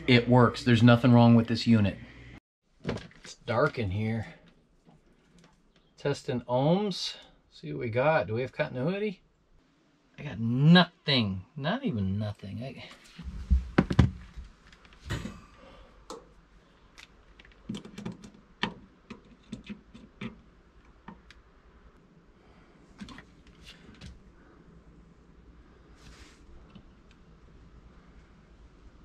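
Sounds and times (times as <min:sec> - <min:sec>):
heavy thumps: 0:13.2 - 0:14.5.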